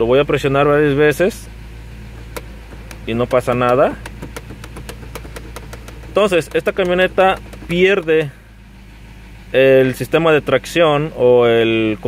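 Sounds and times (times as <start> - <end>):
truck engine idling with misfire: 0.0 - 12.0
rapid ticking: 2.2 - 8.4.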